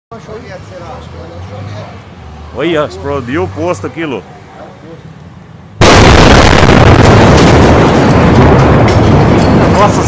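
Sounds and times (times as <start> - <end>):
explosion blast: 5.8 - 10.0
fireball roar: 5.8 - 10.0.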